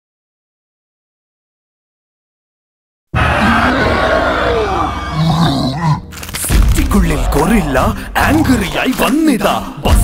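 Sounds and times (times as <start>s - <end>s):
giant gorilla roar: 3.2s - 6.1s, 7.1s - 8.0s.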